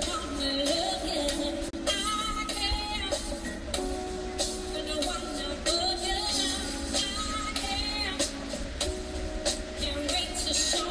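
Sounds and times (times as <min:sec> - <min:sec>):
woman singing: 0:00.0 - 0:03.9, 0:04.6 - 0:08.6, 0:09.8 - 0:10.9.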